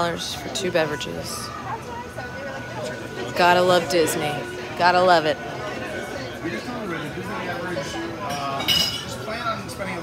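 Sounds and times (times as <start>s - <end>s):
glass clink: 8.3s - 9.2s.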